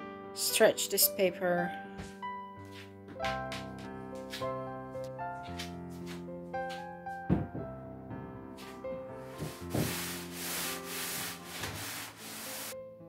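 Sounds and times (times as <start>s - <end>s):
background music: 0.0s - 13.0s
wooden panel knocking: 7.3s - 7.7s, 9.4s - 10.2s
cloth rubbing on wooden board: 9.4s - 12.8s.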